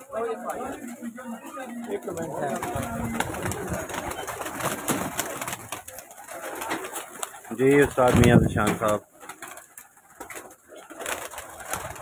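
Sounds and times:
pigeons cooing: 0.1 - 12.0
wings flapping: 0.2 - 12.0.

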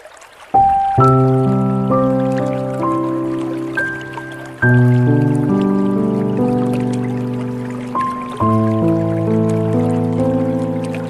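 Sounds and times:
water trickling and dripping: 0.0 - 11.0
slow gentle piano music: 0.5 - 11.0.

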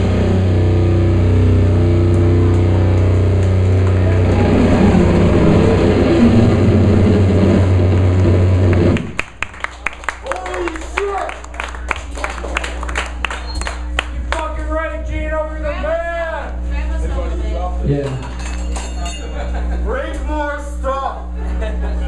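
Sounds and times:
electric bass and guitar drone: 0.0 - 22.0
people clapping: 2.1 - 4.7, 8.6 - 15.0, 18.0 - 19.2.

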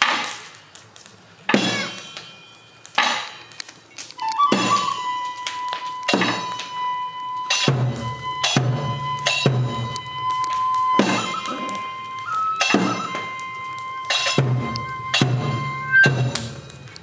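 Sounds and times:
ringing metallic percussion: 1.5 - 17.0
bamboo flute high note: 4.2 - 16.9
low drum beats: 7.5 - 17.0.

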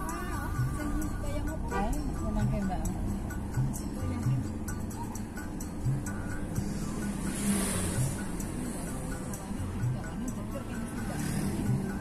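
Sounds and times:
car cabin road noise: 0.0 - 12.0
music with steady beat: 0.0 - 12.0.

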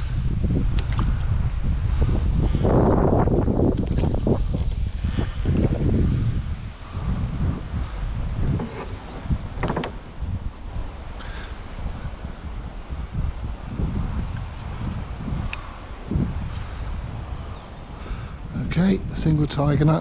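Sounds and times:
wind buffeting microphone: 0.0 - 20.0
water splashing around boat: 7.5 - 13.6.

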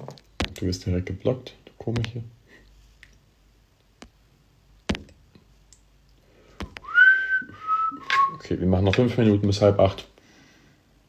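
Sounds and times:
man whistling: 6.8 - 8.4.

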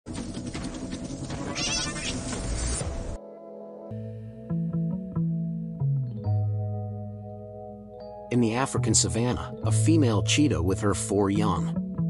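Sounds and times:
animal calling: 1.2 - 2.5
high-pitched animal cry: 1.4 - 2.4.

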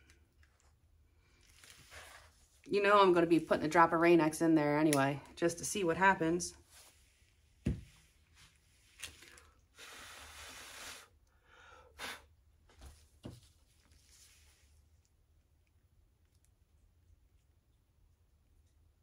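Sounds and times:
soft knock on table: 7.6 - 7.9
breathy hiss: 9.7 - 12.3.

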